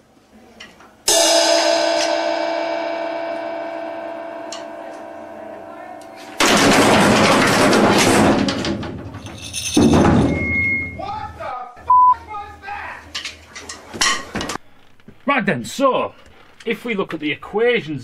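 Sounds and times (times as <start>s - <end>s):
loud struck ring: 1.1s - 8.4s, 9.9s - 11.0s
brief high beep: 10.3s - 11.0s, 11.9s - 12.2s.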